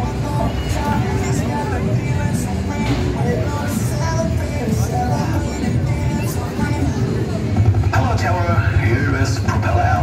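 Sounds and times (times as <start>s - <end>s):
fairground ride machinery rumble: 0.0s - 10.0s
music: 0.0s - 10.0s
voices: 0.0s - 10.0s.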